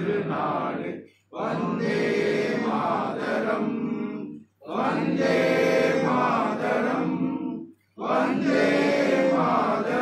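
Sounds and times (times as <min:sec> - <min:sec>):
choir singing slow solemn song: 0:00.0 - 0:10.0.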